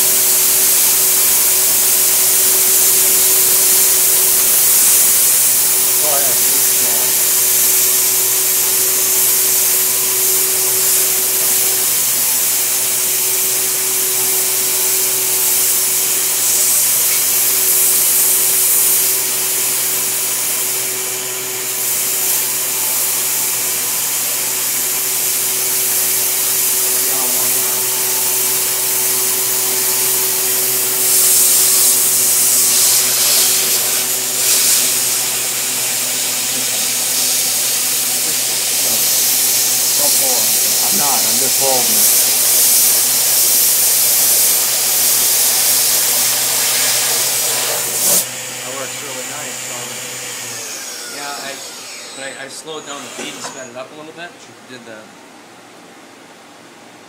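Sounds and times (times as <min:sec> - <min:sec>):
milling spindle whining: 0:46.2 - 0:53.7.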